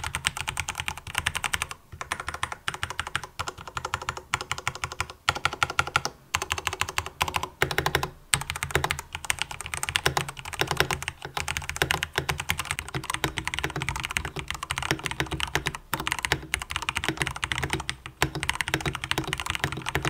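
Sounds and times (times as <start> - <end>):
fast typing on mechanical keyboard: 0.0 - 20.0.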